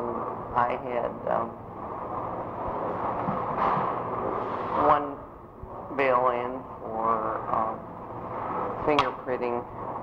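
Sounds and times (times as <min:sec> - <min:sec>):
old recording background noise: 0:00.0 - 0:10.0.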